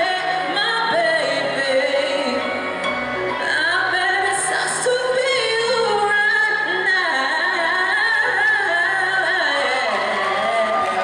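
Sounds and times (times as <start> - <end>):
backing track music: 0.0 - 11.0
woman singing into microphone: 0.0 - 11.0.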